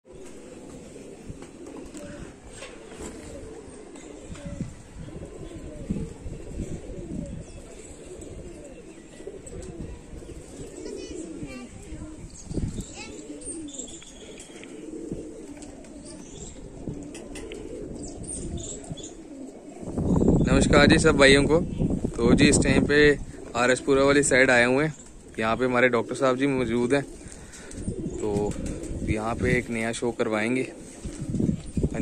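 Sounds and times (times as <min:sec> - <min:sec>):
pigeons cooing: 0:00.0 - 0:32.0.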